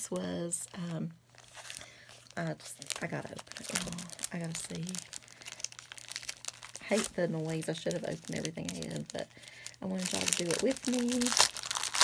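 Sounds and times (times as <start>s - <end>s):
plastic shrink wrap crinkling: 0.0s - 12.0s.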